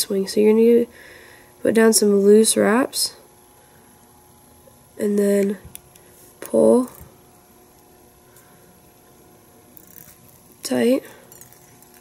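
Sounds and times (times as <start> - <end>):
light electrical hum: 0.0 - 12.0.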